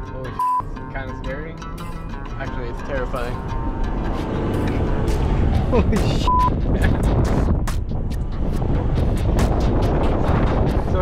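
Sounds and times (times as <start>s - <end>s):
engine and tyre rumble in sand: 2.4s - 11.0s
wind buffeting microphone: 3.0s - 11.0s.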